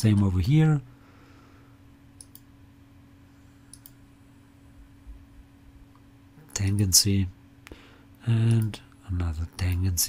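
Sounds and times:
faint low hum: 0.0s - 10.0s
faint mouse clicks: 2.2s - 2.5s, 3.7s - 4.0s.

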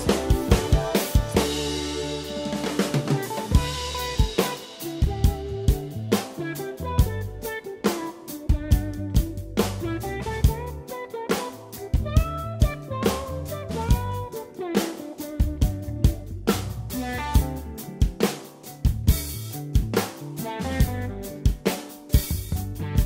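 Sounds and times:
drum kit playing: 0.0s - 23.0s
instrumental backing track: 0.0s - 23.0s.

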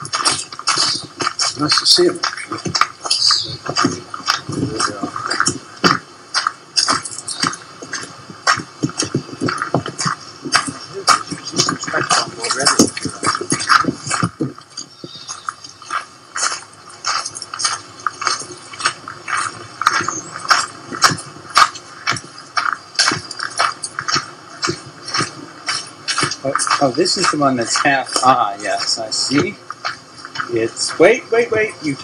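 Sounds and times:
footsteps on hard path: 0.0s - 32.0s
indistinct voices: 0.0s - 32.0s.

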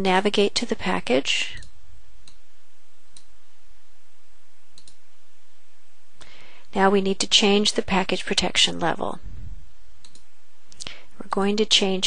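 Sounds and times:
steady background hiss: 0.0s - 12.0s
computer mouse clicks: 3.1s - 3.3s, 4.8s - 5.0s, 10.0s - 10.3s.

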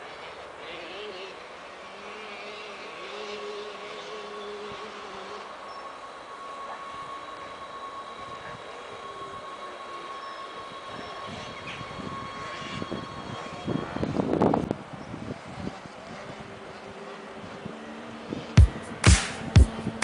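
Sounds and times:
electric train whine: 0.0s - 20.0s.

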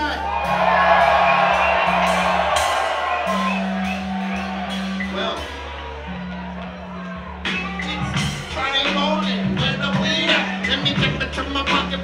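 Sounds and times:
crowd cheering and whooping: 0.0s - 9.3s
deep bass beat: 0.0s - 12.0s.

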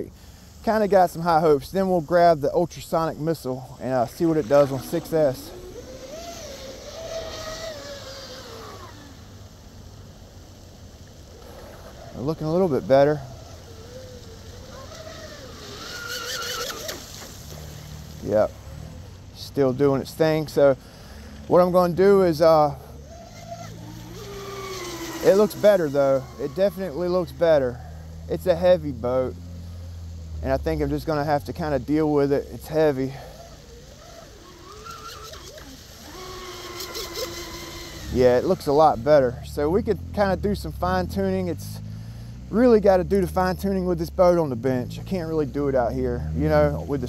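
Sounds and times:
water spray hissing: 0.0s - 47.0s
electric motor whining: 3.2s - 31.1s, 31.8s - 39.1s.

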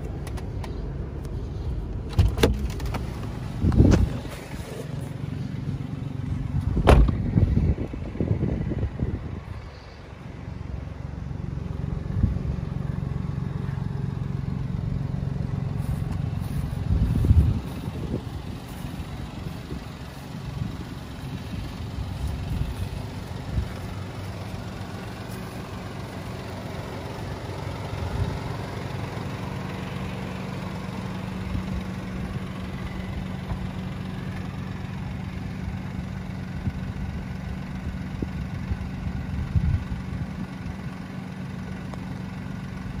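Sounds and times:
car engine idling: 0.0s - 43.0s
low thump: 6.7s - 7.4s.

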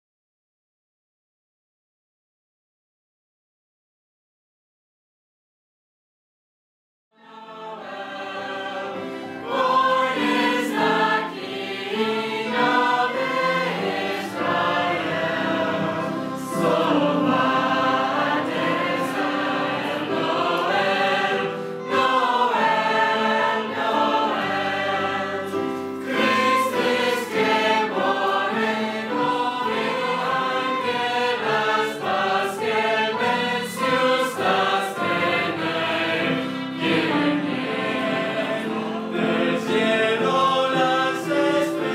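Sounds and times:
choir singing in harmony: 7.2s - 41.9s.

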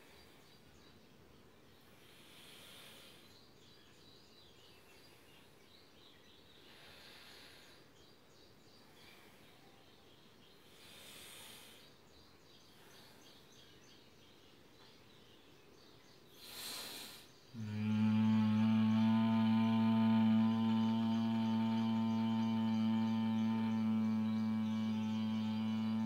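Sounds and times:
soft nasal breathing: 1.8s - 3.5s, 6.6s - 8.0s, 8.6s - 13.6s, 16.3s - 26.0s.

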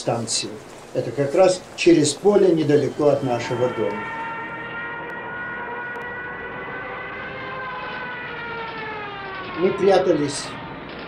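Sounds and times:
siren wailing: 0.7s - 11.0s.

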